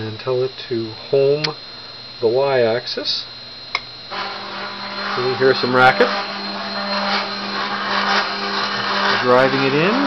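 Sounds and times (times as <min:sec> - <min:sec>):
stepper motor whine: 0:00.0 - 0:10.0.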